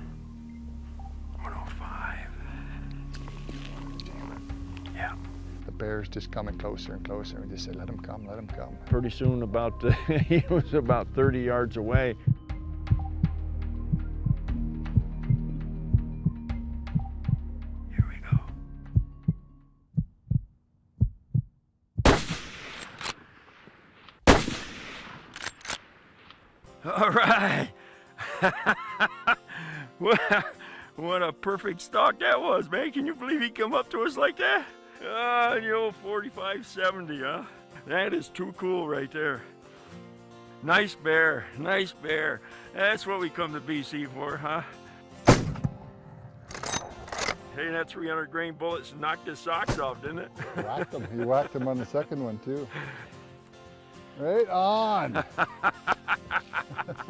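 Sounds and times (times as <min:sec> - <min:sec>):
faint music: 0:00.0 - 0:12.6, 0:17.9 - 0:18.6
heartbeat thumps: 0:11.2 - 0:22.2
rifle shots echoing: 0:22.0 - 0:26.4, 0:45.2 - 0:46.6
rifle lever metallic clicks: 0:22.6 - 0:23.3, 0:25.2 - 0:26.4, 0:46.5 - 0:47.4.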